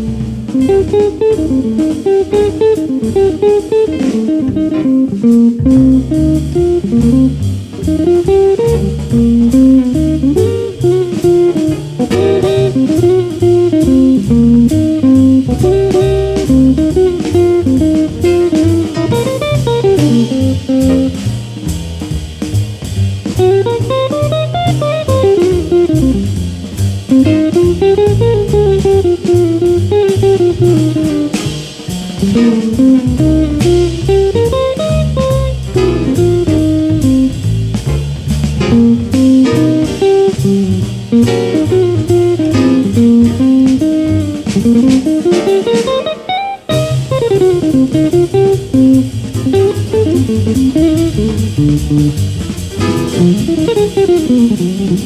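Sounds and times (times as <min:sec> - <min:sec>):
bass line: 0:00.0 - 0:55.0
drum kit with ride cymbal: 0:00.0 - 0:55.0
electric guitar jazz solo: 0:00.0 - 0:55.0.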